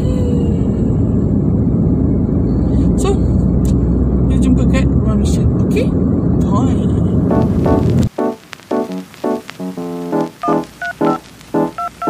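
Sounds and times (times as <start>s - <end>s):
road and engine rumble in car: 0.0s - 8.2s.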